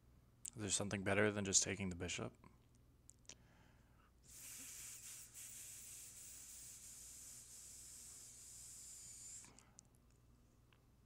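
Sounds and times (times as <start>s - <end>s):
faint high hiss: 4.2s - 9.8s.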